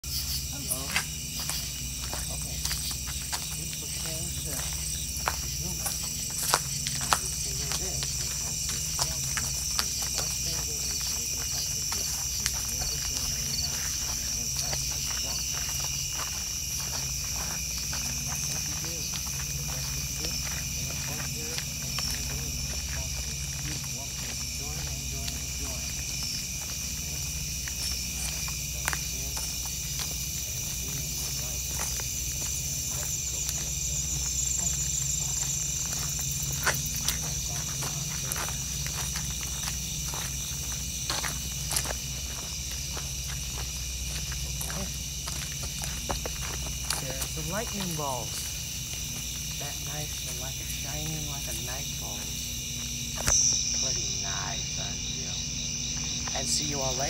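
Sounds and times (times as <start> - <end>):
crickets chirping: 0.0 - 57.0
footsteps clicking: 0.1 - 57.0.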